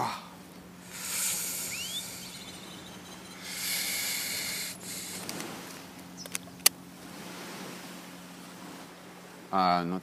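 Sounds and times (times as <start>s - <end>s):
hissing swells: 0.8s - 5.5s
short rising chirp: 1.0s - 4.8s.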